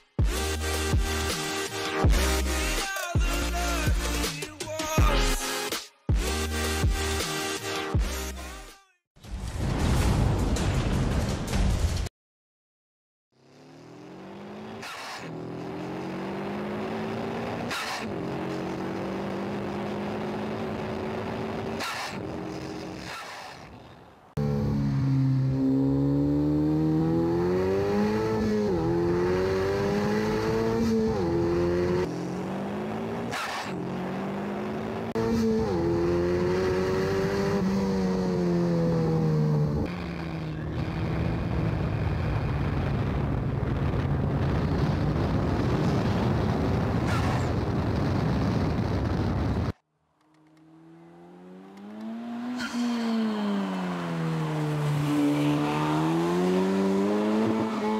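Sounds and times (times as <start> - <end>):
car engine revving: 13.4 - 23.7, 24.3 - 45.8, 50.2 - 57.9.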